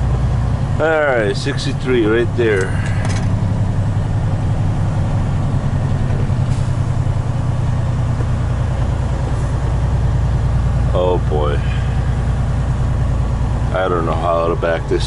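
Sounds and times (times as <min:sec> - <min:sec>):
diesel truck engine drone: 0:00.0 - 0:15.0.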